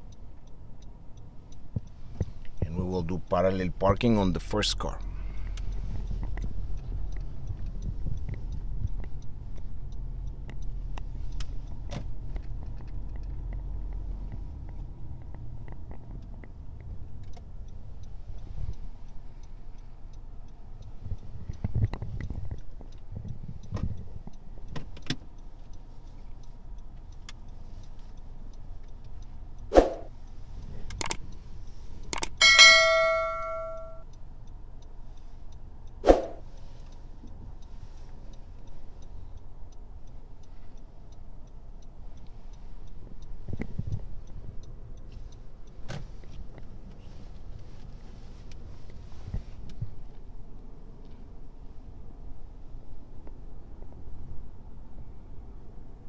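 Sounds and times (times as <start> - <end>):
sharp clicks: 30.8 - 31.4, 32.0 - 34.0
ringing bell chime: 32.4 - 34.0.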